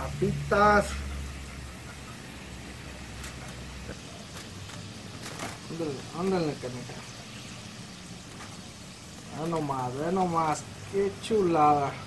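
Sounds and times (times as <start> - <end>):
oil sizzling in skillet: 0.0 - 12.0.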